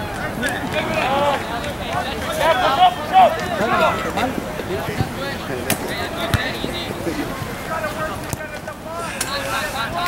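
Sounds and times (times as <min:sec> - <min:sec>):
distant players' voices: 0:00.0 - 0:10.0
outdoor background noise: 0:00.0 - 0:10.0.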